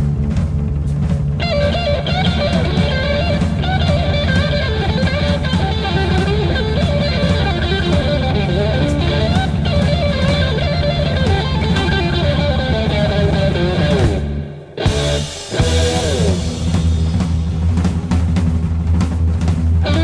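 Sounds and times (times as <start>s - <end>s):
bass notes: 0.0s - 20.0s
electric guitar solo: 1.4s - 17.0s.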